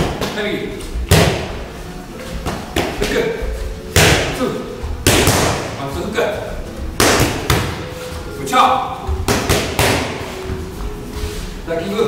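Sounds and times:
punches smacking focus mitts: 1.1 - 1.5, 3.9 - 4.4, 5.0 - 5.8, 7.0 - 7.8, 9.1 - 10.2.

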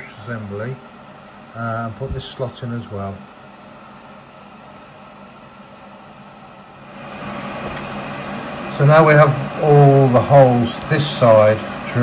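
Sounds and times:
milling machine humming: 0.0 - 12.0.

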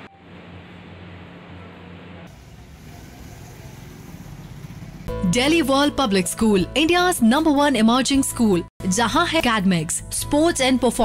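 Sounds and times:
street background noise: 0.0 - 5.1
vehicle engine running: 2.3 - 5.2.

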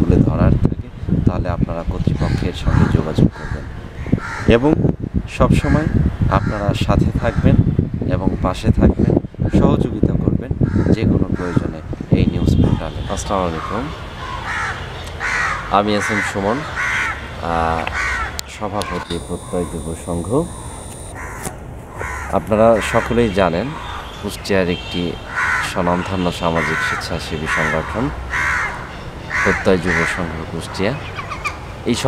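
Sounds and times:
man talking: 0.0 - 3.8, 4.5 - 14.0, 15.7 - 16.7, 17.4 - 17.9, 18.5 - 20.9, 22.3 - 28.2, 29.5 - 31.0
crows cawing: 2.3 - 4.6, 6.4 - 6.7, 10.6 - 11.6, 13.5 - 24.3, 25.2 - 31.7
bird calls: 12.7 - 31.9
man speaking: 18.5 - 21.0, 22.3 - 28.2, 29.5 - 31.0.

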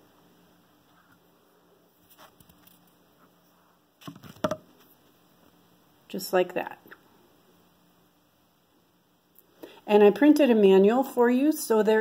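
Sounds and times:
knocks and clicks: 4.0 - 4.6.

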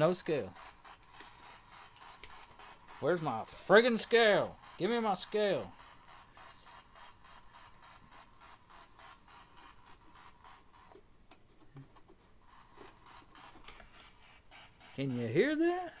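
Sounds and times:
soft rapid ticking: 0.0 - 16.0.

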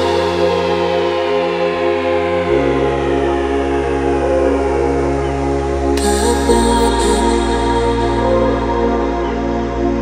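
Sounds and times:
held synth chords: 0.0 - 10.0.

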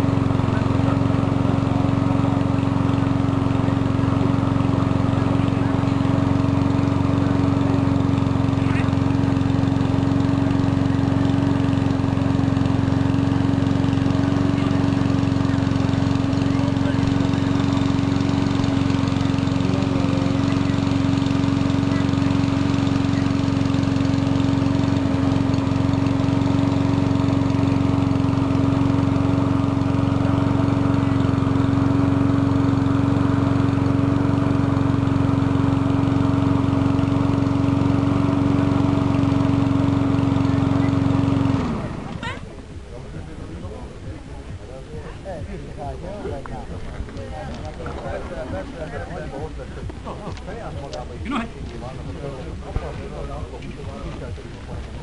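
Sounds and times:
motor drone: 0.0 - 55.0.

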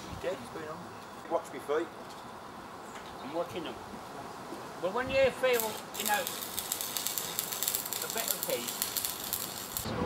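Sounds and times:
arc welding crackling sizzle: 4.8 - 10.0.

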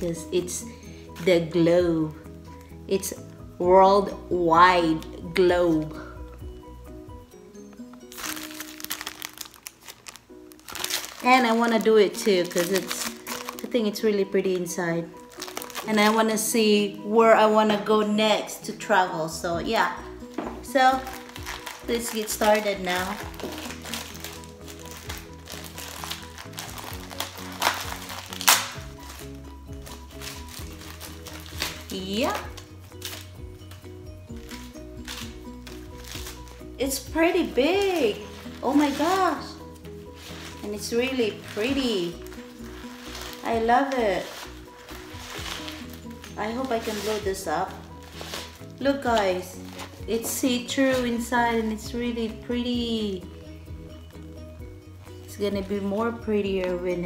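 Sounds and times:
soft background music: 0.0 - 57.0
plastic packaging crinkling: 7.8 - 16.5, 20.7 - 51.3.

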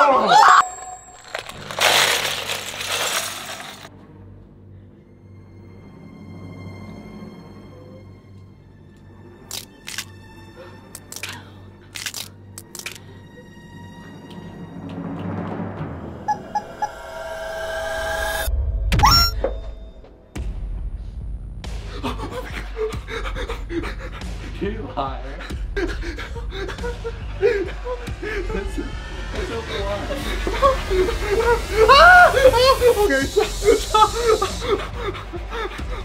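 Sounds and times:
plastic bricks clattering: 1.1 - 3.9
loud rising squeal: 16.2 - 19.3.

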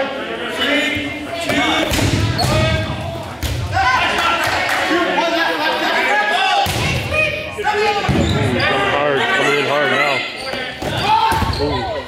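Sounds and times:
players shouting in echoing hall: 0.0 - 12.0.

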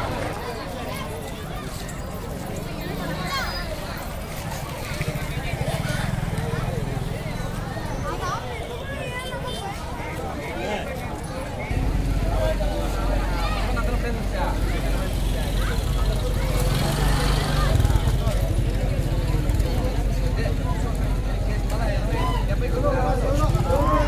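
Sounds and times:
crowd talking: 0.0 - 24.0.

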